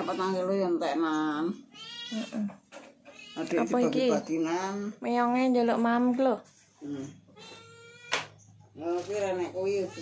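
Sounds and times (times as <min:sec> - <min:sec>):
cat meowing: 0:01.7 - 0:02.4, 0:03.1 - 0:03.7, 0:07.4 - 0:08.3.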